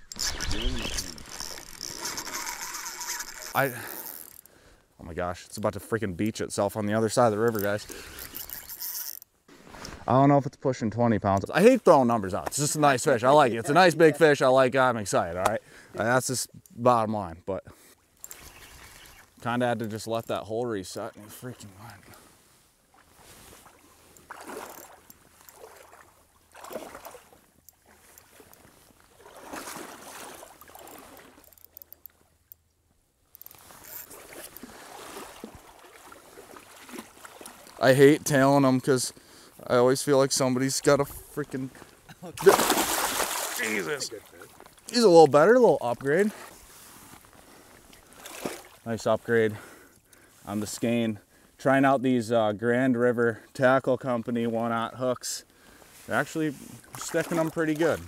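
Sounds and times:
fishing reel ratchet clicking: 0.0 - 4.5, 7.5 - 9.3, 30.8 - 32.6, 33.3 - 34.2
river water splashing: 22.8 - 32.4, 33.4 - 37.9, 41.6 - 48.9, 56.6 - 58.0.

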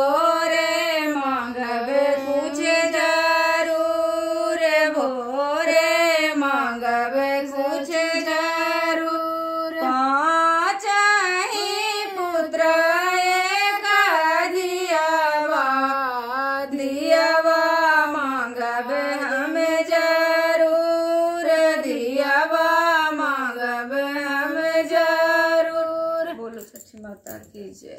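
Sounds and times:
women singing in unison: 0.0 - 26.7.

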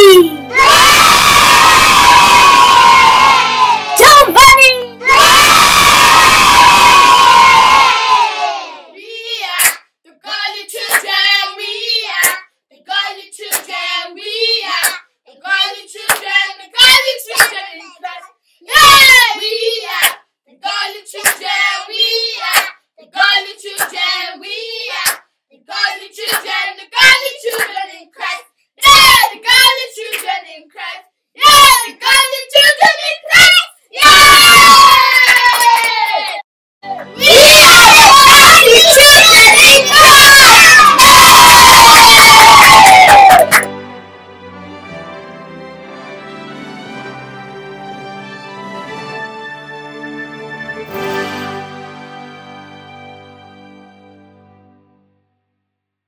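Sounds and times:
children shouting and cheering: 0.0 - 25.1, 28.8 - 43.7
hand clapping: 9.6 - 9.9, 10.8 - 11.2, 12.2 - 12.4, 13.4 - 13.8, 14.8 - 15.1, 16.0 - 16.4, 17.3 - 17.6, 19.9 - 20.3, 21.2 - 21.6, 22.4 - 22.8, 23.7 - 24.1, 25.0 - 25.3, 26.2 - 26.6, 27.4 - 27.8, 30.0 - 30.4, 35.1 - 36.4, 43.0 - 43.8.

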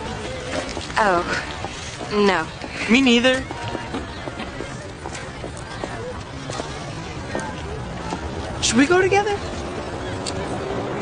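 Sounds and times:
footsteps on pavement: 0.0 - 10.5
murmur of voices: 0.0 - 11.0.

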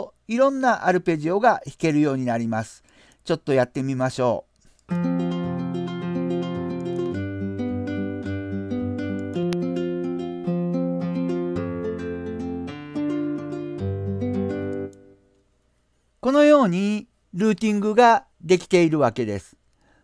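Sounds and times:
nylon-string guitar arpeggio: 4.9 - 15.2.

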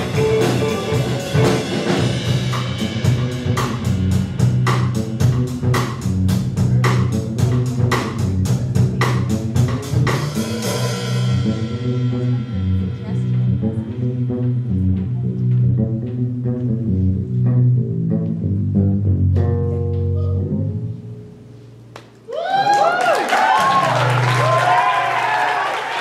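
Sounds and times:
electric guitars: 0.0 - 4.2
drum kit beat: 0.0 - 16.9
bass guitar: 0.0 - 22.2.

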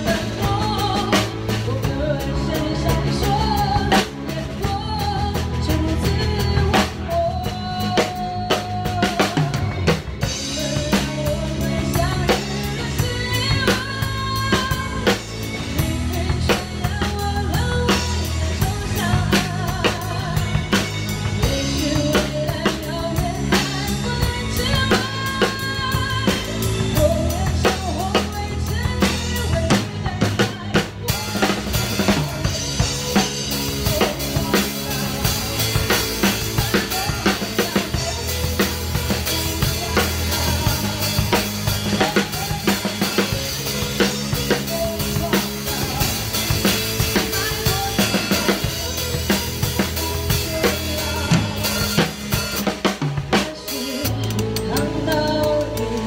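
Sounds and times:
drum kit playing: 0.0 - 56.0
sustained bass notes: 0.0 - 56.0.

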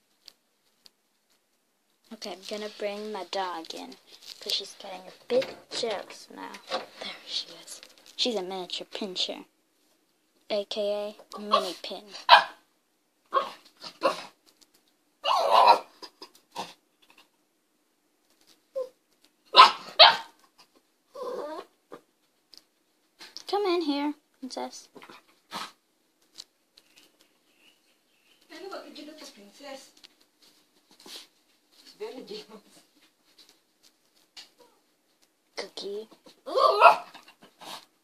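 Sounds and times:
small dog barking: 11.5 - 12.6, 13.3 - 14.3, 15.2 - 16.0, 19.5 - 20.4, 36.4 - 37.2
dog whining: 15.2 - 16.0, 18.7 - 19.0, 21.1 - 21.8, 36.4 - 37.3
small dog wavering call: 36.5 - 37.0.

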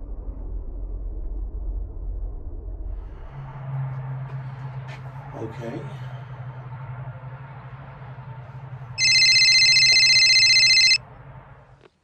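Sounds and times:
electronic telephone ringtone: 9.0 - 11.0.

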